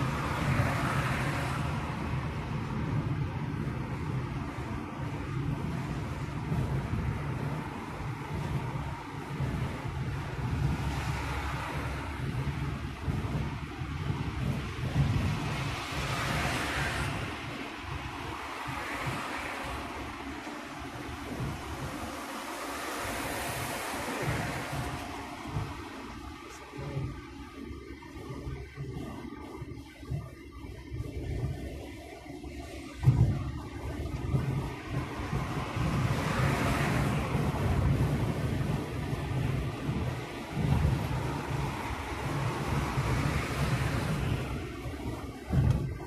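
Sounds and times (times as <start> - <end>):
wind rushing hiss: 0.0 - 27.9, 33.0 - 46.0
car engine and tyre rumble: 0.0 - 46.0.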